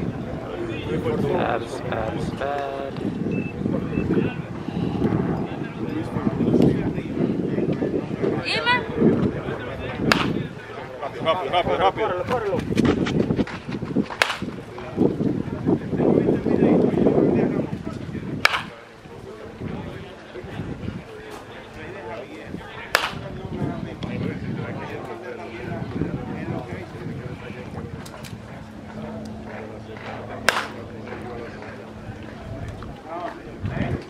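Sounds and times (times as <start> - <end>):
people talking indistinctly: 0.0 - 34.0
baseball bat hitting ball: 10.1 - 10.4, 14.1 - 14.5, 18.4 - 18.8, 22.9 - 23.3, 30.4 - 30.8
sharp impact crack: 10.1 - 10.4, 14.2 - 14.5, 18.4 - 18.7, 23.0 - 23.2, 30.5 - 30.8.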